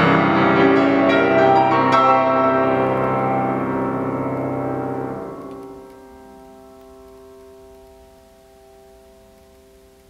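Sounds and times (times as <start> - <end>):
grand piano soft chord: 0.0 - 9.3.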